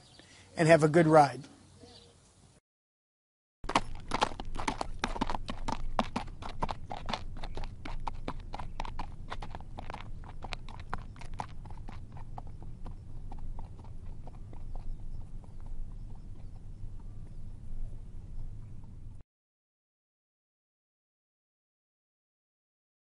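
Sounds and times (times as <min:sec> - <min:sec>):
horse hooves clip-clopping: 0:03.6 - 0:19.2
low steady rumble: 0:04.4 - 0:19.2.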